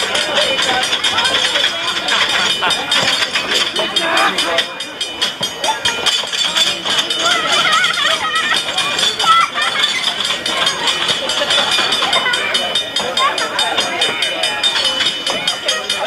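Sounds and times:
crossing bell ringing rapidly: 0:00.0 - 0:16.0
onlookers chattering and calling out: 0:00.0 - 0:16.0.

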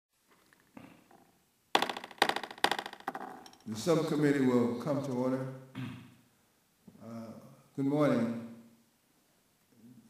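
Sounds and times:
faint room noise: 0:00.2 - 0:10.0.

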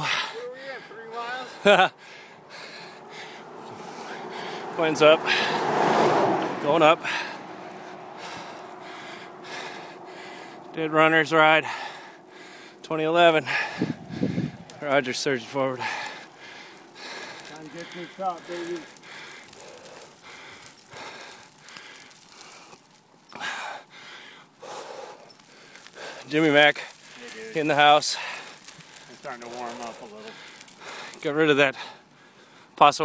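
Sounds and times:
heavy breathing: 0:00.0 - 0:32.8.

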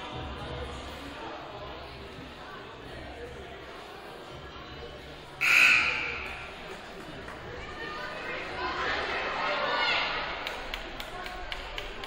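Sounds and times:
scoreboard horn: 0:05.4 - 0:06.4.

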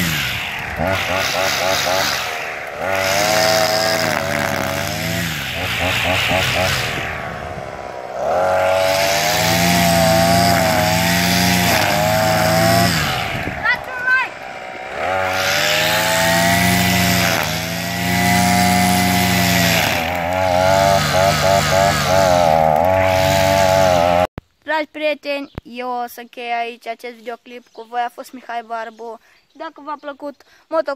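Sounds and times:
brush cutter engine cutting grass: 0:00.0 - 0:24.3.

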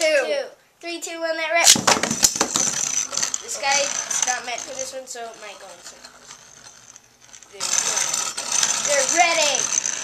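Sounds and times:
fast rattle of clashing tops: 0:01.6 - 0:10.0
spinning tops whirring: 0:01.7 - 0:10.0.

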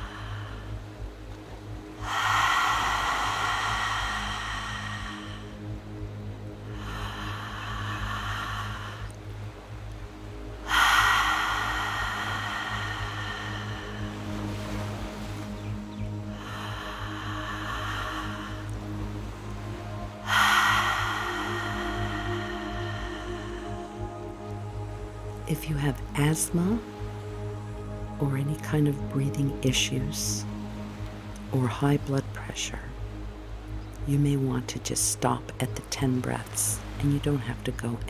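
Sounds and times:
calm music with low drone: 0:00.0 - 0:38.0
deep mouth breaths: 0:02.0 - 0:05.9, 0:06.7 - 0:09.3, 0:10.7 - 0:14.5, 0:16.3 - 0:19.0, 0:20.2 - 0:25.2.

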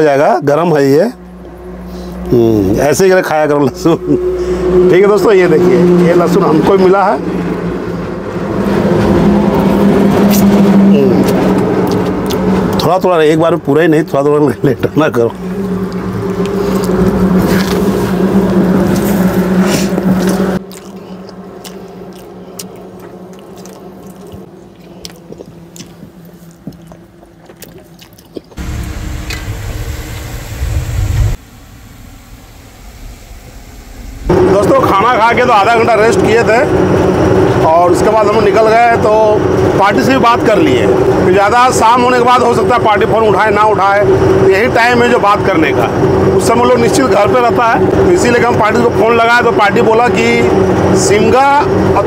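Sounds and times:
vehicle engine drone: 0:00.0 - 0:52.0
loud low rumble: 0:00.8 - 0:13.0, 0:15.3 - 0:20.7, 0:28.6 - 0:52.0.

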